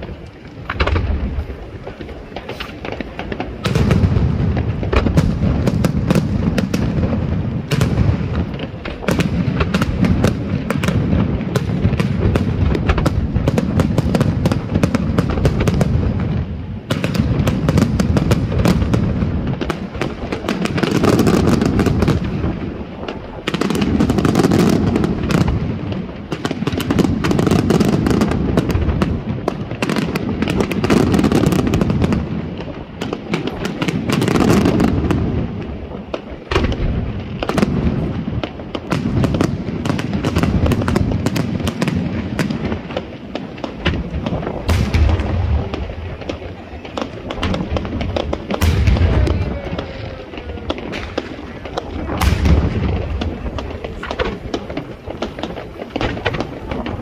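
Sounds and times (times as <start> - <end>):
dense firework crackling: 0.0 - 57.0.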